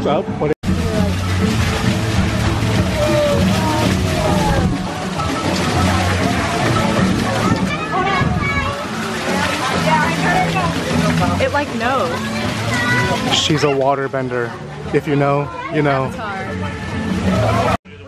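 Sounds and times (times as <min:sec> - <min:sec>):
music: 0:00.0 - 0:18.0
fountain water splashing: 0:00.6 - 0:17.8
people chattering: 0:02.5 - 0:18.0.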